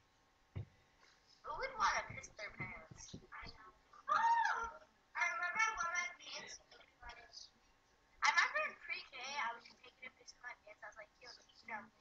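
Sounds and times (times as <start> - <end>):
voice whining: 4.0 - 4.9.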